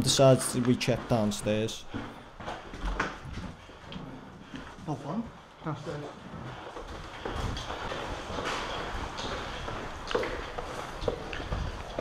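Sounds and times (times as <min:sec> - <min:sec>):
footsteps on concrete floor: 0:00.0 - 0:12.0.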